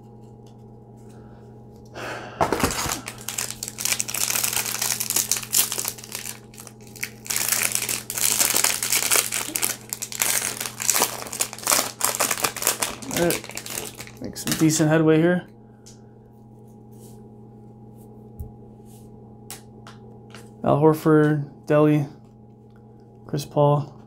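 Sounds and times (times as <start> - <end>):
plastic wrapper tearing and crinkling: 2.4 - 14.8.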